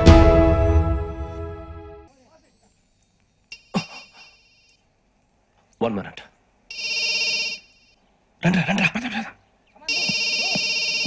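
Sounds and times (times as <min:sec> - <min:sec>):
mobile phone ringtone: 0:06.7 - 0:07.8, 0:09.9 - 0:11.0.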